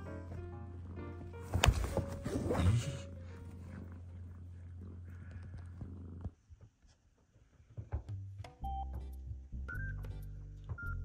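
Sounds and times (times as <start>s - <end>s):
cat purring: 0.0s - 8.0s.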